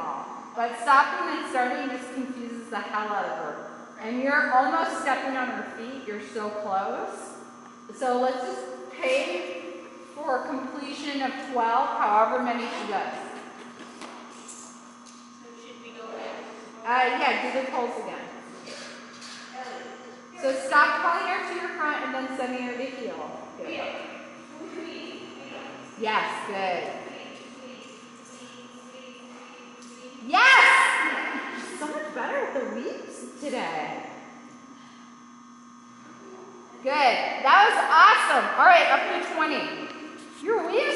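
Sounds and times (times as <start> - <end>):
woman speaking: 0.0 - 13.4, 16.0 - 18.4, 20.4 - 34.3, 36.8 - 40.9
low hum of indoor hall: 0.0 - 40.9.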